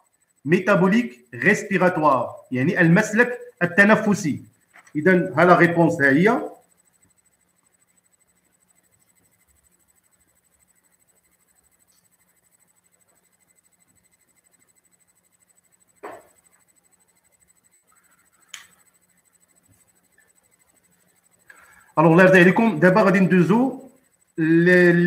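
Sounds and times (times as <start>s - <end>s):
low steady hum: 0.0s - 25.0s.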